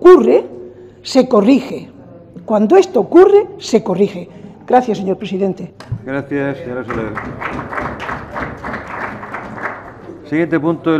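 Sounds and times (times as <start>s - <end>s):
many hands clapping: 6.7s - 10.2s.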